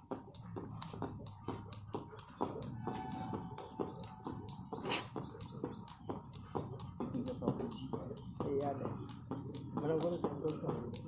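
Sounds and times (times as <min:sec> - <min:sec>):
birds chirping: 0:00.0 - 0:11.0
jump rope slapping paving tiles: 0:00.0 - 0:11.0.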